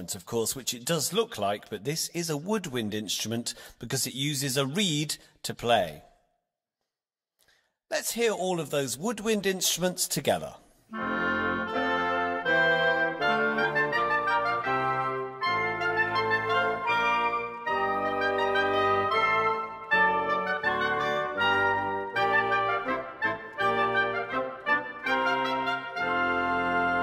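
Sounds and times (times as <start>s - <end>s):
orchestral woodwinds playing: 10.9s - 27.0s.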